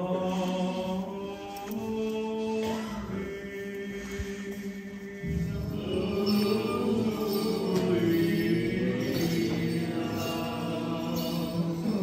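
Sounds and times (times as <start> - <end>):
voices chanting: 0.0 - 12.0.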